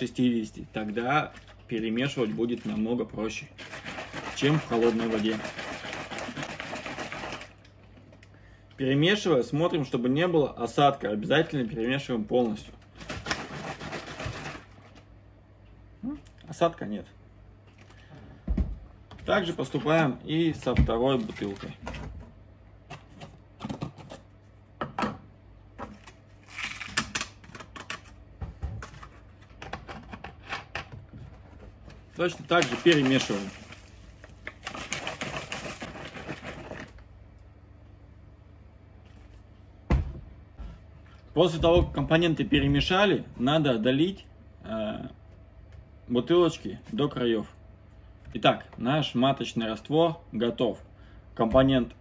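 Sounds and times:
liquid sloshing in plastic bottle: 0:01.2 - 0:08.2, 0:12.9 - 0:15.1, 0:31.7 - 0:37.0.

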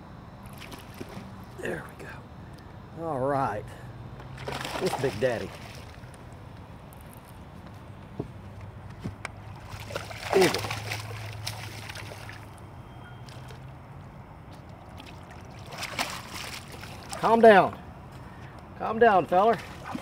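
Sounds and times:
low steady hum: 0:00.0 - 0:20.0
water sloshing and splashing: 0:00.4 - 0:01.6, 0:04.3 - 0:06.2, 0:09.4 - 0:17.6, 0:19.4 - 0:20.0
fish thrashing at water surface: 0:04.4 - 0:06.0, 0:09.5 - 0:12.5, 0:14.9 - 0:17.2.

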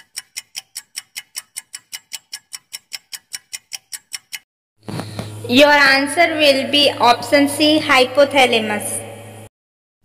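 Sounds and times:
quick clock ticking: 0:00.0 - 0:04.5.

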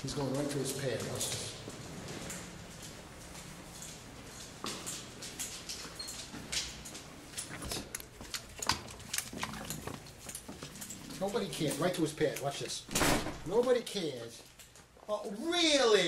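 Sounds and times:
dog claws clicking on tiles: 0:04.9 - 0:11.0.

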